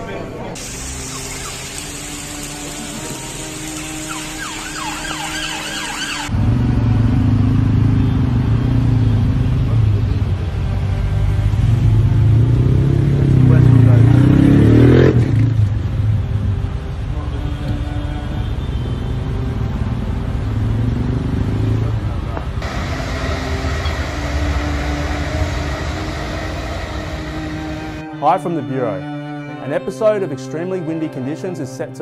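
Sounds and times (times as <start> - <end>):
rain: 0.6 - 6.3
rushing water: 0.6 - 6.3
engine revving: 0.8 - 16.0, 20.5 - 28.1
motor vehicles rumbling: 6.2 - 28.1.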